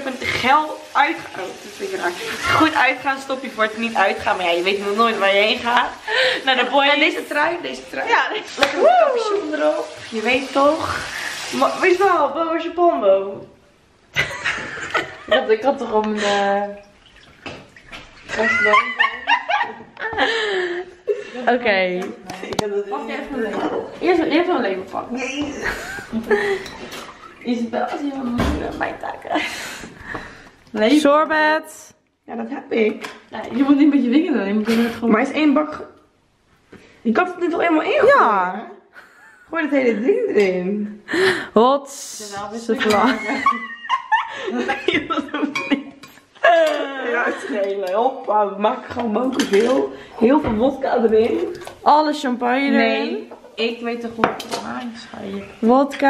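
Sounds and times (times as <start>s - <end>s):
women laughing and talking: 1.4s - 9.7s, 14.2s - 16.8s, 18.3s - 28.2s, 28.9s - 29.8s, 33.6s - 35.4s, 37.9s - 40.9s, 42.5s - 54.0s.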